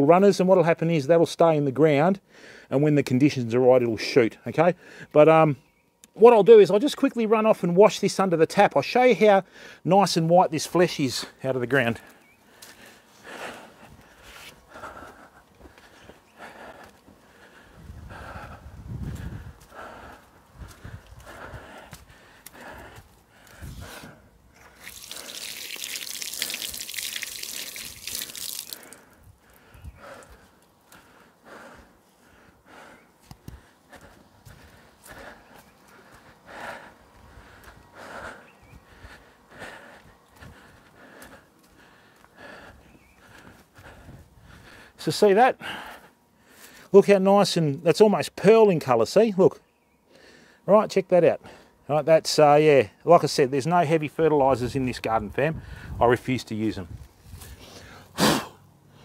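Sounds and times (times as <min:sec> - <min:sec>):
garden tap running: 0:24.6 - 0:30.2.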